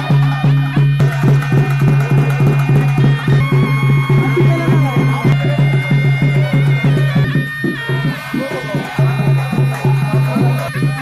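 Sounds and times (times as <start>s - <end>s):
frame drums beaten fast: 0.0s - 11.0s.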